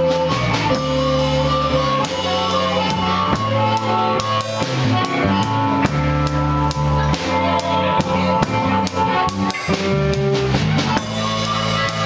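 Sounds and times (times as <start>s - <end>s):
bass guitar: 0.0s - 12.0s
drum kit beat: 0.0s - 12.0s
electric guitar: 0.0s - 12.0s.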